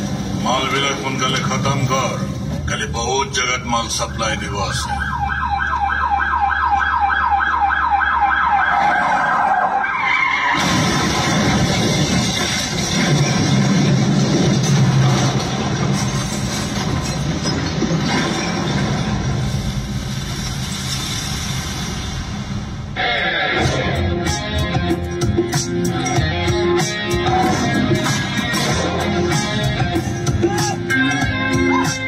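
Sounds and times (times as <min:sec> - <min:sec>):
police siren warbling: 0:03.9 - 0:11.1
car engine: 0:10.2 - 0:30.4.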